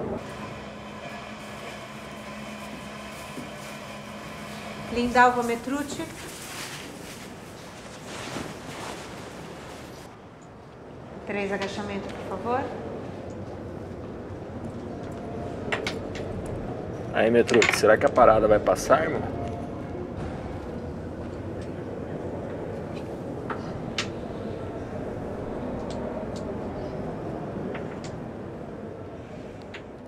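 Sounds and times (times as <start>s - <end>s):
soft steady rushing noise: 2.2s - 30.0s
low rumbling background: 10.9s - 30.0s.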